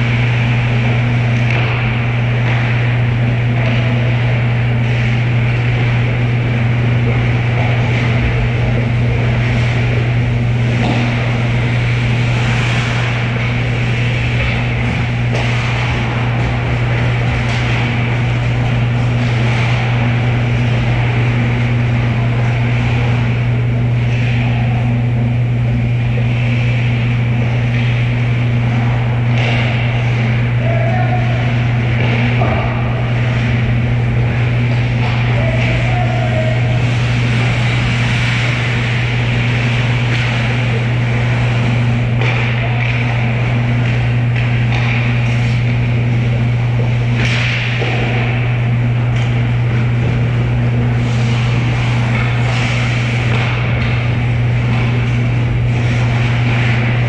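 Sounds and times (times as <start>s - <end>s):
loud low hum: 0.0s - 57.0s
skates and sticks on ice: 0.1s - 24.8s, 26.0s - 57.0s.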